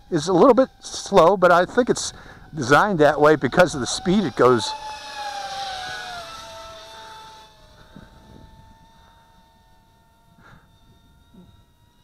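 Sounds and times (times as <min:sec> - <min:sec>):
drone motors whining: 0:00.0 - 0:12.0.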